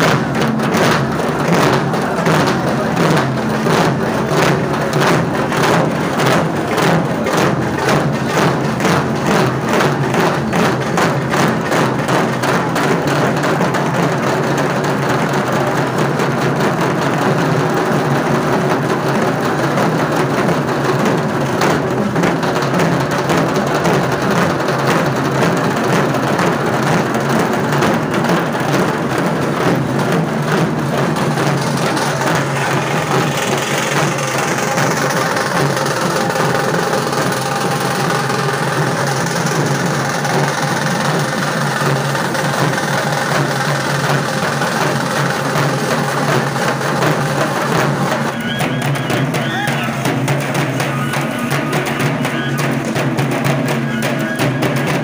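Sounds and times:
barrel drums beaten with sticks: 0.0s - 55.0s.

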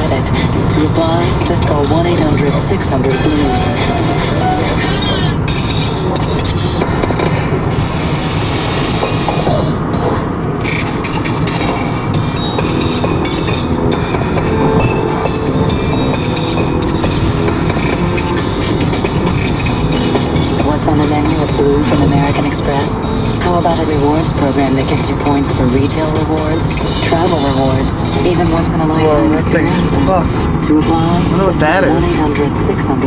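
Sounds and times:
car radio music: 0.0s - 33.0s
road and tyre rumble: 0.0s - 33.0s.

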